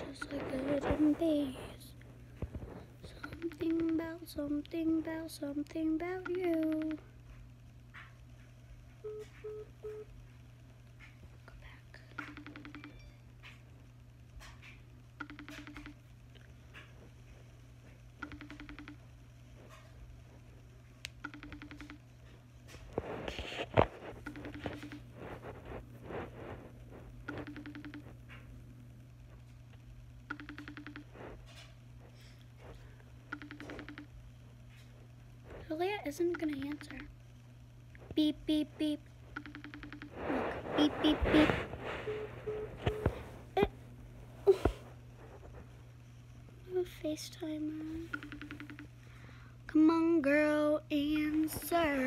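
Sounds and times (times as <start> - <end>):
girl saying beep: 0.0 - 1.6, 3.1 - 4.5, 5.8 - 7.0, 35.8 - 37.1, 40.8 - 41.6
phone ringing tone beeps: 9.0 - 10.1, 12.2 - 13.3, 15.2 - 16.0, 18.2 - 19.1, 21.2 - 22.0, 24.2 - 25.1, 27.3 - 28.2, 30.3 - 31.1, 33.3 - 34.1, 39.4 - 43.3, 47.9 - 49.0.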